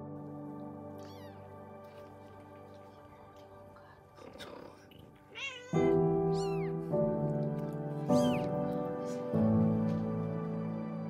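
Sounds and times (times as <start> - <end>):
slow sustained chords music: 0.0 - 11.0
kitten mewing: 5.3 - 6.8.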